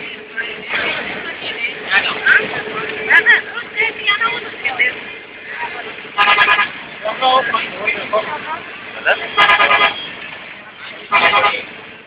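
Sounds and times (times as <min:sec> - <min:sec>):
moving vehicle running noise: 0:00.0 - 0:12.0
vehicle horn toots: 0:06.2 - 0:06.8, 0:09.1 - 0:10.2, 0:11.1 - 0:11.7.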